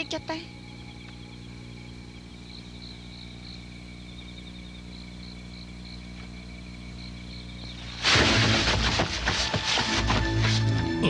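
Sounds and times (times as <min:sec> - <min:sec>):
faint crickets chirping: 0:00.0 - 0:11.0.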